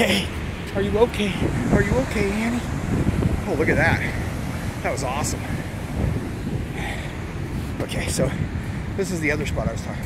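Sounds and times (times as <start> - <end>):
ocean surf breaking on rocks: 0.0 - 9.9
wind buffeting microphone: 0.0 - 10.0.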